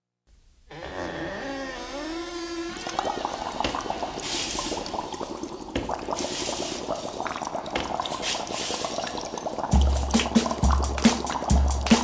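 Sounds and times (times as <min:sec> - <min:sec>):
liquid bubbling and gurgling: 0:01.4 - 0:12.0
hiss: 0:04.2 - 0:04.8, 0:06.2 - 0:07.1, 0:08.1 - 0:09.1.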